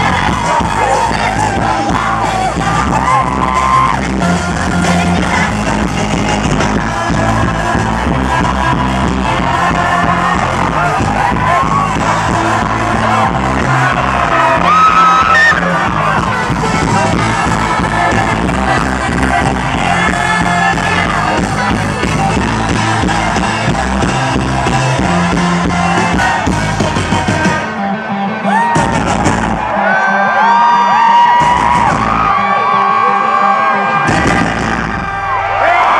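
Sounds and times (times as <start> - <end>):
person singing: 0.0 - 34.9
crowd cheering and whooping: 0.0 - 35.9
crowd yelling along: 0.0 - 35.9
live rock band playing: 0.0 - 35.9.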